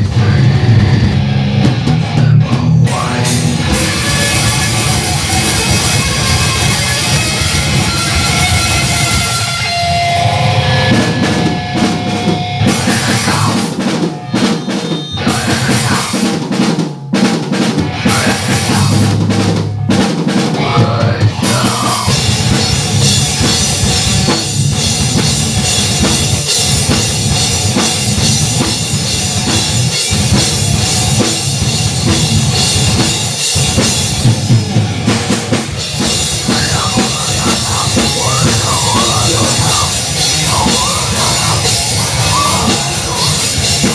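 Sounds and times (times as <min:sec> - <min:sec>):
electric guitar playing loud: 0:00.0 - 0:16.4, 0:17.8 - 0:43.9
drum kit playing: 0:00.0 - 0:43.9.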